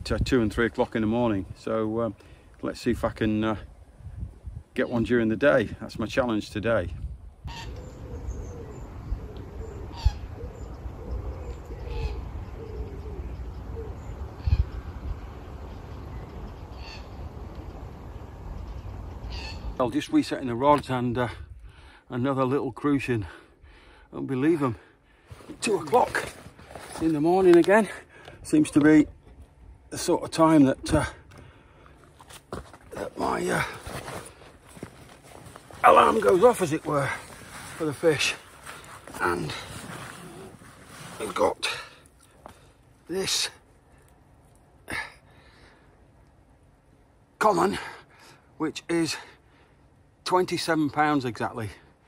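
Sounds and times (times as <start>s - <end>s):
wind rumble on microphone: 2.9s - 4.8s, 5.4s - 19.8s
bird low hooting calls: 7.4s - 19.9s
higher bird calls: 7.4s - 19.9s
man speaking: 25.5s - 29.2s, 32.9s - 33.9s, 35.8s - 38.5s, 39.1s - 39.8s, 43.1s - 43.6s.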